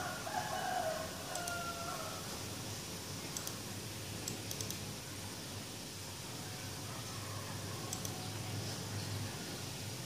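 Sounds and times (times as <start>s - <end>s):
rooster crowing: 0.0s - 2.3s.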